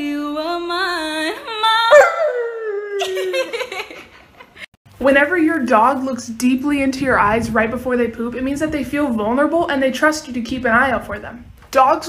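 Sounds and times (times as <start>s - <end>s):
husky howling: 1.9s - 2.7s.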